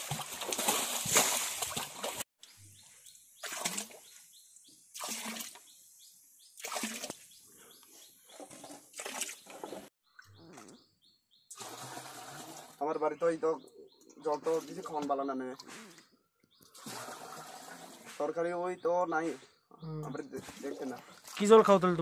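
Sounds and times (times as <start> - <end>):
water splashes: 0.0 - 2.3, 3.4 - 4.1, 4.9 - 5.7, 6.6 - 7.3, 11.5 - 12.8, 20.4 - 22.0
water pouring from pot: 11.5 - 12.8.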